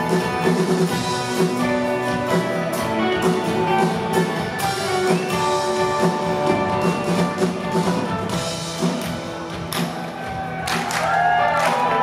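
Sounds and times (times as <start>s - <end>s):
gliding guitar notes: 0.0s - 10.6s
drums and cymbals: 0.0s - 12.0s
electric guitars sustained notes: 0.0s - 12.0s.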